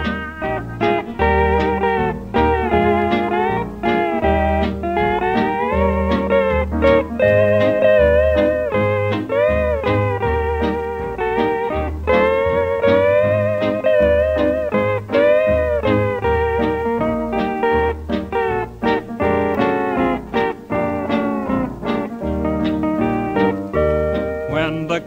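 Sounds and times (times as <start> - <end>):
bass and rhythm accompaniment: 0.0 - 25.0
steel guitar gliding notes: 0.0 - 25.0.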